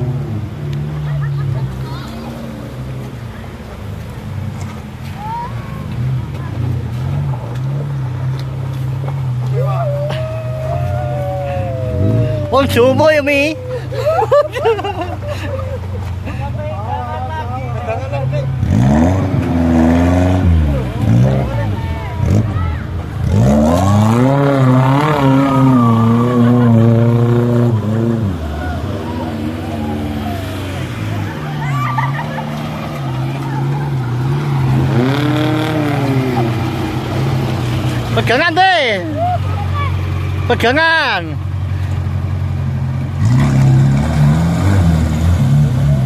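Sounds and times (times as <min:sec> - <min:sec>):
jeep engine revving: 0:00.0 - 0:16.3, 0:17.6 - 0:46.0.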